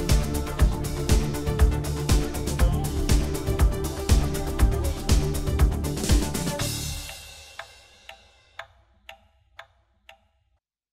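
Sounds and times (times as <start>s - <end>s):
clockwork ticking: 0.0s - 10.3s.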